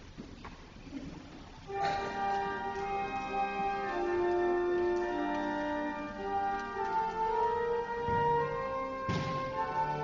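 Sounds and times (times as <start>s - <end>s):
church organ chords: 1.7s - 10.0s.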